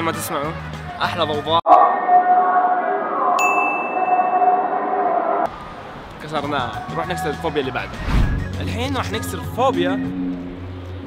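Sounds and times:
bright bell-like ding: 0:03.4 - 0:04.8.

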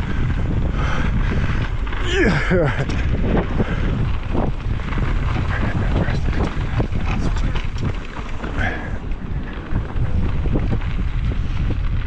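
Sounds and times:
tyres rumbling over dirt: 0:00.0 - 0:12.0
wind buffeting microphone: 0:00.0 - 0:12.0.

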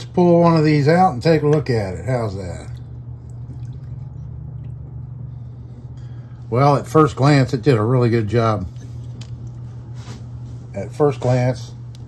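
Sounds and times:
steady low hum: 0:00.0 - 0:12.0
liquid dripping into tub: 0:02.6 - 0:05.2.

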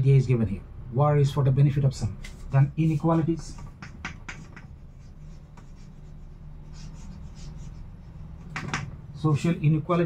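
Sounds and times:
chalk scratching on chalkboard: 0:02.2 - 0:08.7.

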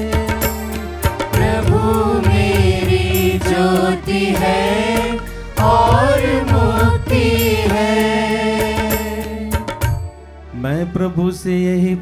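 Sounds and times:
choir singing a psalm: 0:00.0 - 0:09.8.

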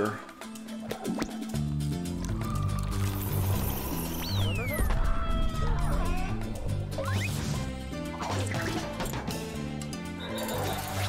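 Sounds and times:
cartoon background music: 0:00.0 - 0:11.0
sliding whistle sound effects: 0:02.4 - 0:04.9.

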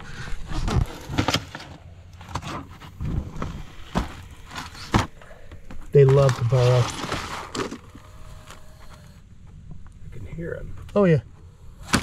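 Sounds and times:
scraping in dirt and stones: 0:00.0 - 0:10.0.

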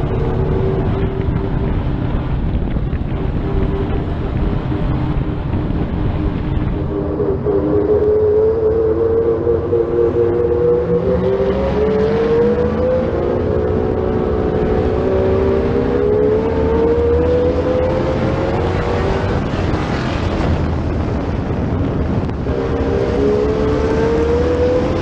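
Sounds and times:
race car engine running hard: 0:00.0 - 0:25.0.

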